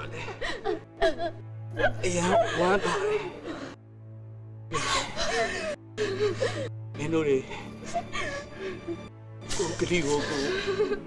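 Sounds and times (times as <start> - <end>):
soft background music: 0.0 - 11.0
person sobbing: 0.2 - 3.8, 4.7 - 6.7, 7.8 - 11.0.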